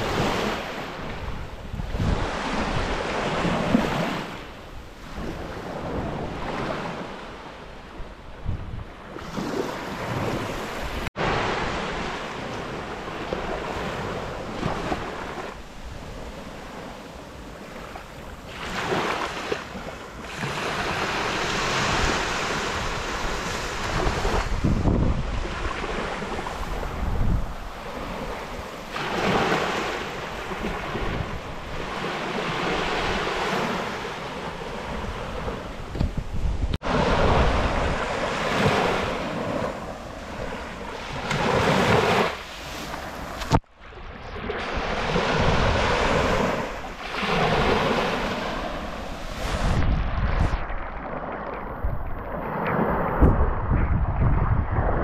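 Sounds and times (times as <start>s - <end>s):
wind buffeting microphone: 0.0s - 42.3s, 42.9s - 55.0s
waves breaking on sandy beach: 0.0s - 55.0s.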